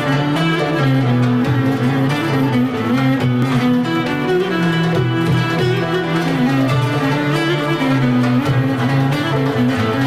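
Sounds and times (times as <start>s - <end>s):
folk string ensemble playing: 0.0s - 10.0s.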